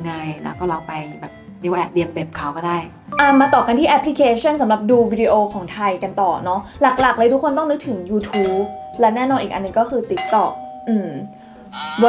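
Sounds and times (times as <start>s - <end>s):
bell-like ding: 3.1s - 4.2s
woman speaking: 3.2s - 12.0s.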